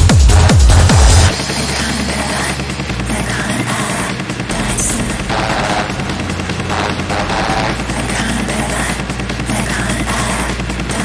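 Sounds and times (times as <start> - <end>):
deep bass kick drum: 0.0 - 3.2
techno music: 0.0 - 11.0.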